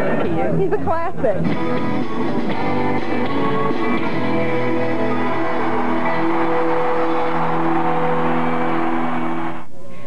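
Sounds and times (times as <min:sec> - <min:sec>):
crowd noise: 0:00.0 - 0:10.0
live rock band chord: 0:01.5 - 0:06.6.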